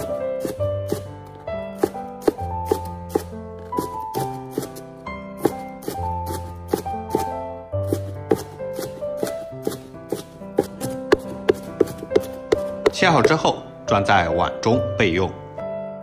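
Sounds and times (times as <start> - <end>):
cleaver chopping on wooden board: 0.0 - 4.8, 5.4 - 13.6
background music: 0.0 - 16.0.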